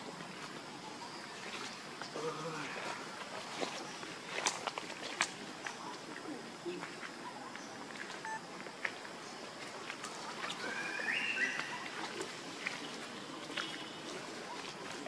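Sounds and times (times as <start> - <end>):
outdoor background hiss: 0.0 - 15.0.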